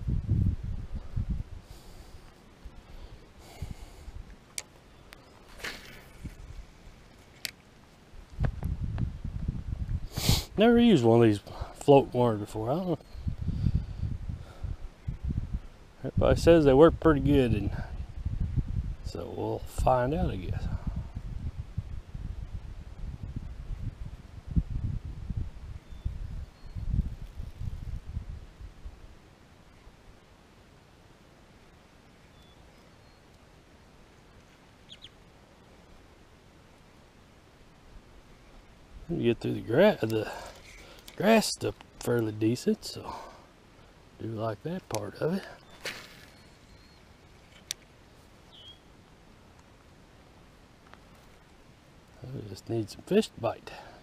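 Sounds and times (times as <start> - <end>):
low microphone rumble: 0.0 - 1.6, 8.2 - 10.1, 20.3 - 29.2
person sniffing: 10.1 - 10.6.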